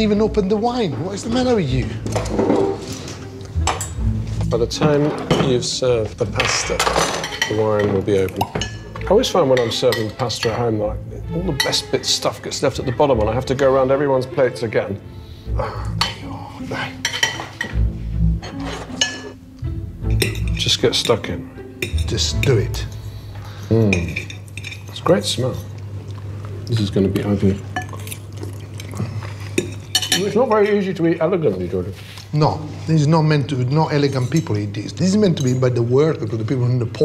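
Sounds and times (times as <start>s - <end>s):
background music: 0.0s - 37.0s
crockery and cutlery clattering: 0.4s - 13.8s, 17.0s - 19.4s, 20.1s - 23.0s, 23.8s - 25.8s, 29.5s - 30.8s, 33.5s - 36.8s
utensil clinking on ceramic plate: 6.4s - 10.9s, 17.0s - 17.8s, 20.1s - 23.0s, 23.9s - 25.7s, 29.6s - 30.4s, 34.0s - 35.8s.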